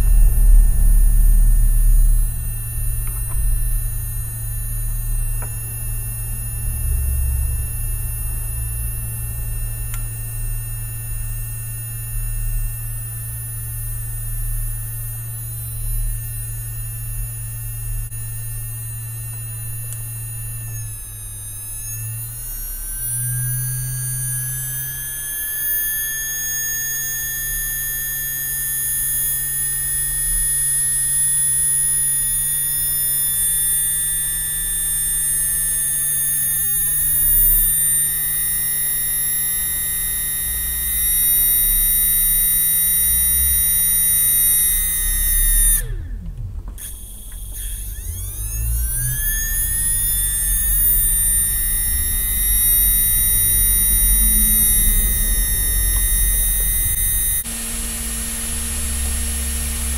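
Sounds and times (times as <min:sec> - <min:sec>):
low hum: 0:00.0 - 0:59.9
motor high-pitched electronic whine: 0:00.0 - 0:59.9.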